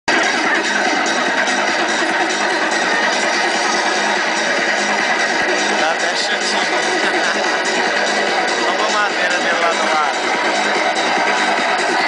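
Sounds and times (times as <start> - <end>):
loud music from loudspeaker: 0.1 - 12.0.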